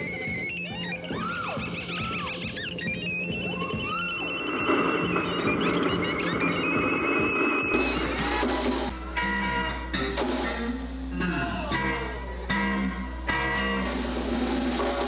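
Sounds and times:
stepped beeping tones: 0:00.0 - 0:10.2.

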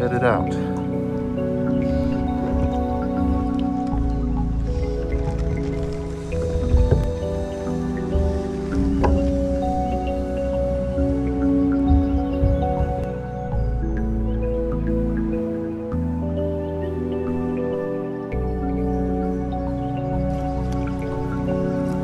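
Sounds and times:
background music with held notes: 0:00.0 - 0:22.0.

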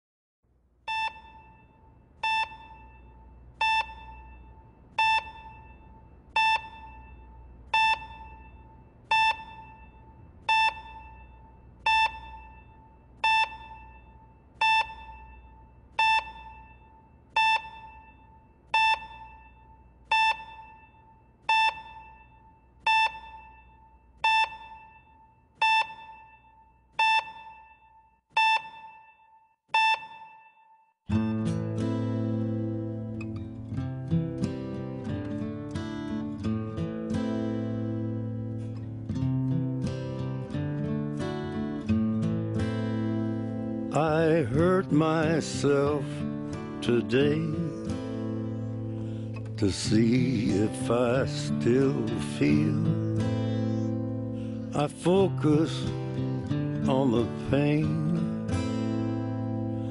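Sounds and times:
patient monitor beeping: 0:00.9 - 0:59.9.

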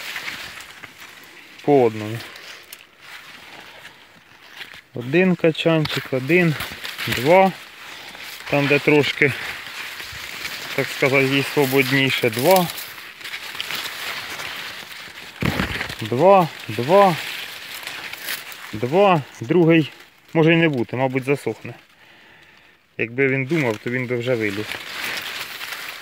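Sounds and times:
rustling of maize leaves: 0:00.0 - 0:26.0
person speaking: 0:01.3 - 0:02.5, 0:04.9 - 0:13.0, 0:15.4 - 0:21.9, 0:23.0 - 0:24.8.

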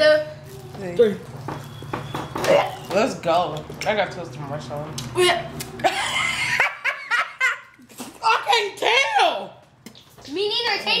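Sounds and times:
people laughing: 0:05.8 - 0:07.9.

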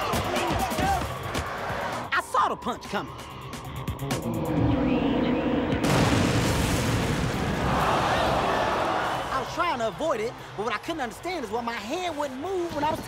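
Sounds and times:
music: 0:00.0 - 0:06.4.

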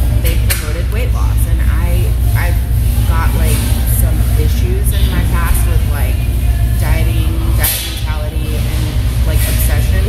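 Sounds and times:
low rumble: 0:00.0 - 0:10.0
woman talking: 0:00.0 - 0:10.0.

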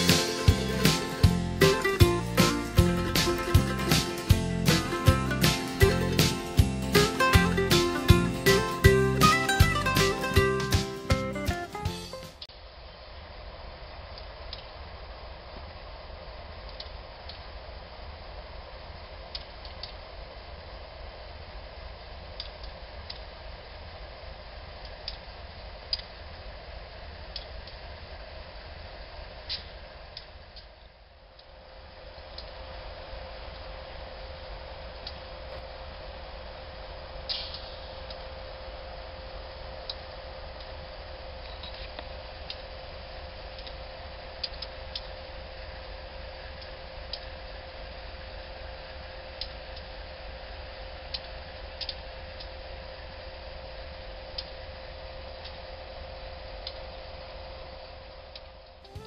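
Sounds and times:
faint steady whine: 0:00.0 - 0:59.0
light ticks: 0:51.1 - 0:52.5.

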